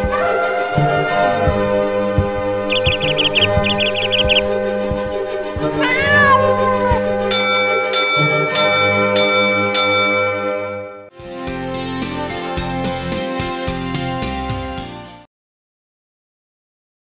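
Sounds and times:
intro music: 1.5s - 5.6s
high chick chirps: 2.7s - 4.5s
cat meowing: 5.7s - 7.1s
bell-like chime strikes: 7.3s - 11.1s.

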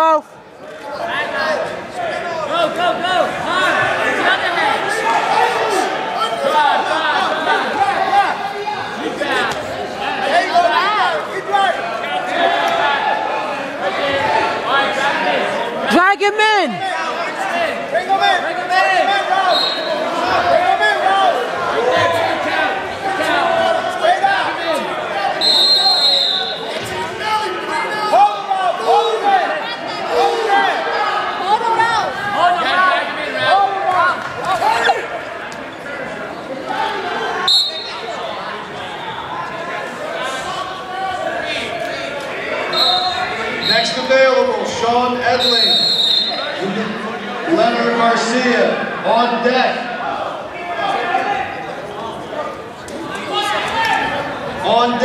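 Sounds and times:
people shouting in echoing gym: 1.0s - 47.3s
referee's whistle blast: 25.4s - 26.7s, 37.5s - 38.0s, 42.7s - 44.0s, 45.3s - 46.5s.

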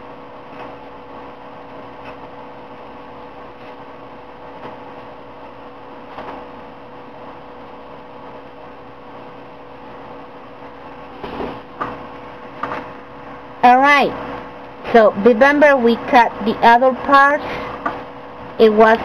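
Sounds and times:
steady hum with faint tone: 0.0s - 19.0s.

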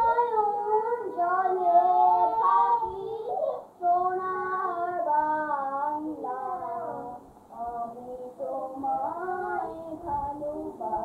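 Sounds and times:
child singing unaccompanied: 0.0s - 11.0s.

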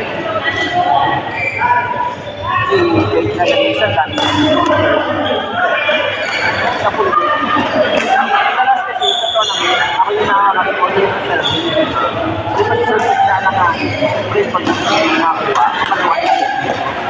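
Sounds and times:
players talking: 0.0s - 17.0s.

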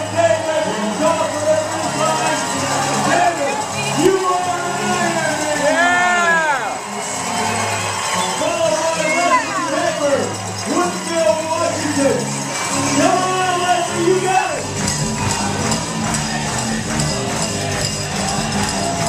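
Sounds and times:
music over public-address system: 0.0s - 19.0s
voices shouting calls: 1.6s - 11.1s.

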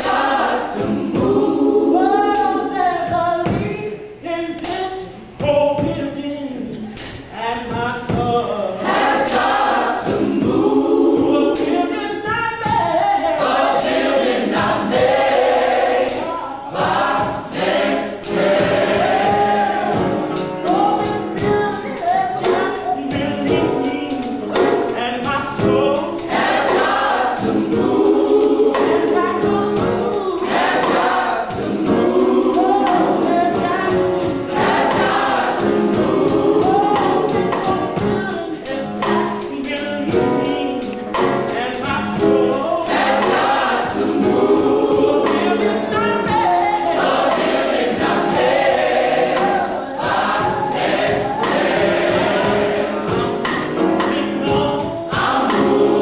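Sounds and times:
choir singing gospel song: 0.0s - 56.0s
drums keeping a steady beat: 0.0s - 56.0s
piano: 0.0s - 56.0s.

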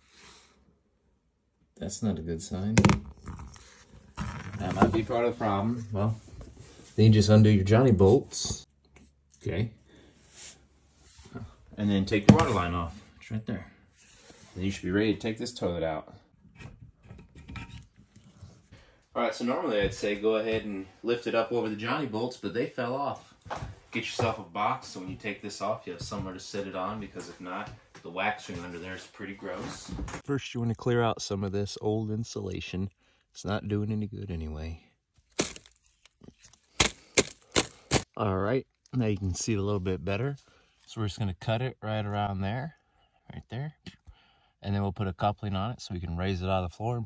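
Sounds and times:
insulation and wire netting snapping: 35.3s - 38.1s.

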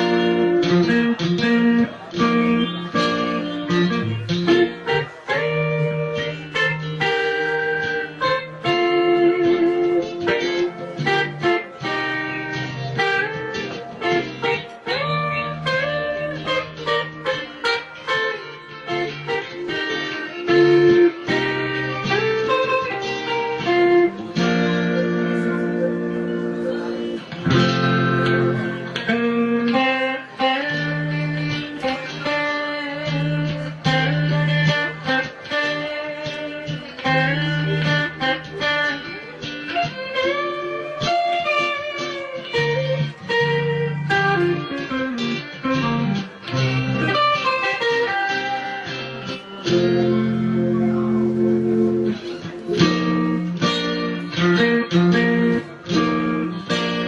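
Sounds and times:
acoustic-electric guitar melody: 0.0s - 57.0s.

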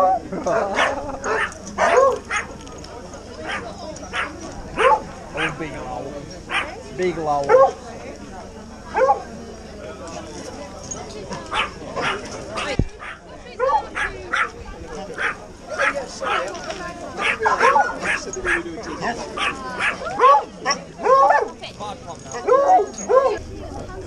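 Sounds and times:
dogs barking and yipping: 0.0s - 2.7s, 3.4s - 5.1s, 6.5s - 6.8s, 7.5s - 7.8s, 8.9s - 9.2s, 11.5s - 14.6s, 15.2s - 21.6s, 22.3s - 23.4s
people talking: 0.0s - 24.0s.

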